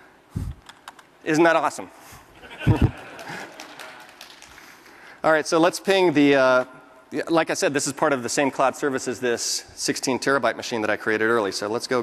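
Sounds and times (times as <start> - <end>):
room background noise: 0.0 - 12.0
light scattered clapping: 2.7 - 4.9.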